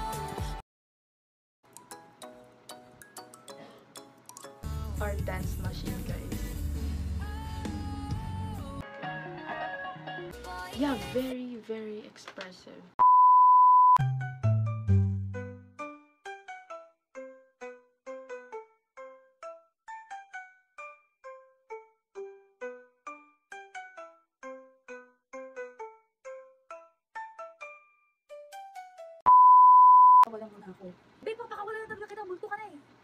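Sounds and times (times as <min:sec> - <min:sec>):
censor bleep: 0:13.0 - 0:14.0, 0:29.3 - 0:30.3
high test tone beep: 0:13.0 - 0:14.0, 0:29.3 - 0:30.3.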